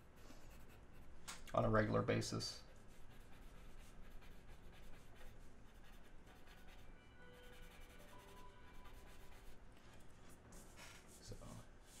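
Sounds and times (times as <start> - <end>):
pencil scratching on drawing board: 0.0 - 1.1, 2.7 - 11.2.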